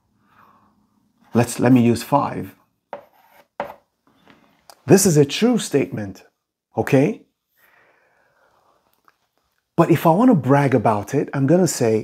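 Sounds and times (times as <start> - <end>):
chalk scratching on blackboard: 2.9 - 3.8.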